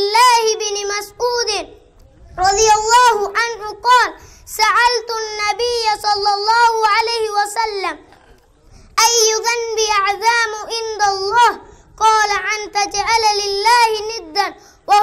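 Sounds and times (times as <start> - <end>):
boy chanting: 0.0 - 8.1, 9.0 - 15.0.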